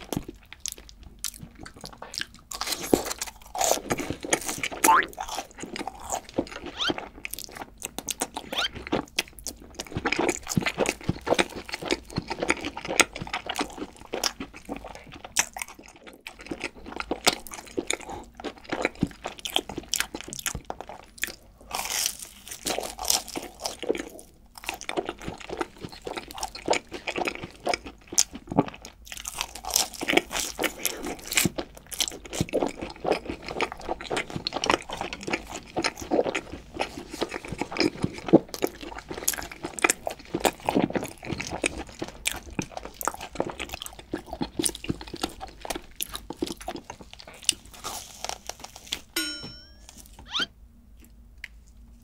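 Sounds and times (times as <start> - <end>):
crunchy chewing: 0.0 - 49.2.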